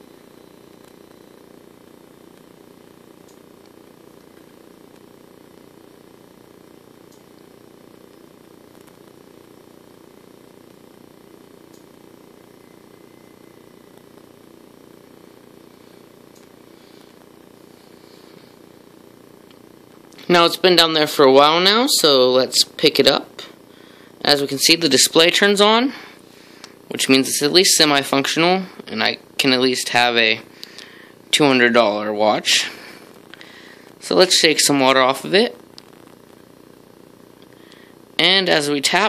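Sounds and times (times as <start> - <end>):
faint low hum: 0.0 - 39.0
faint ticks: 7.1 - 7.5.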